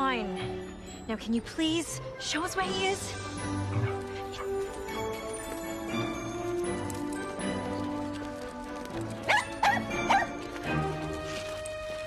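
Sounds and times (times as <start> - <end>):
background music: 0.0 - 12.0
dog barking high-pitched: 9.3 - 10.3.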